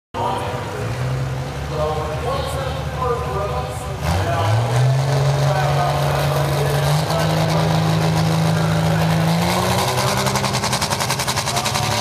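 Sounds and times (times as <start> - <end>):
diesel truck engine rumbling: 0.2 - 12.0
people's voices: 0.2 - 12.0.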